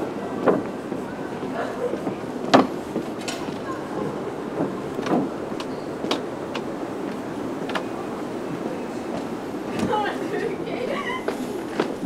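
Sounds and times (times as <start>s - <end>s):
low city rumble: 0.0s - 12.0s
footsteps on concrete: 0.4s - 7.9s, 11.1s - 12.0s.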